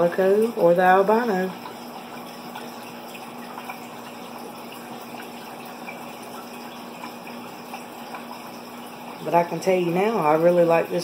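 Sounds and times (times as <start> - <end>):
aquarium water running: 0.0 - 11.0.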